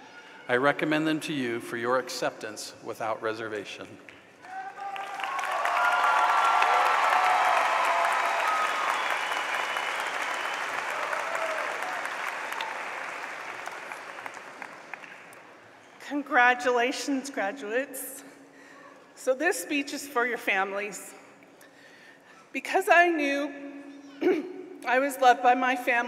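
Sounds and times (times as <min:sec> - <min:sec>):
long cheers: 0:04.4 - 0:14.4
audience applauding: 0:04.4 - 0:15.5.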